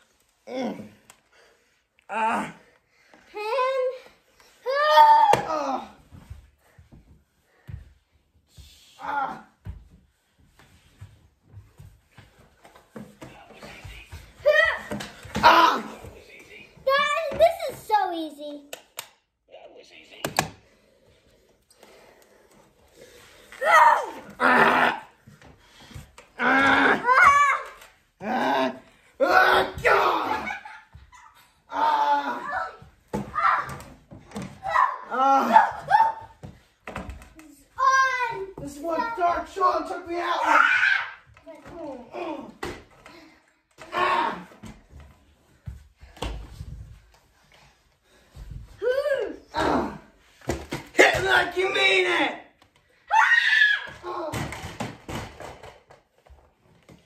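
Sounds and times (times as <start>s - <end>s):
people yelling and grunting: 0.4s - 1.3s, 2.0s - 6.3s, 8.7s - 9.8s, 13.6s - 16.2s, 22.9s - 45.1s, 48.6s - 54.9s
children shouting: 26.4s - 30.7s, 53.1s - 54.4s.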